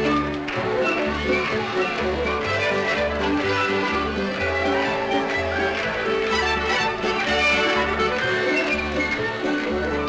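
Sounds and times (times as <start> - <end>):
fiddle-led square-dance music: 0.0 - 10.0.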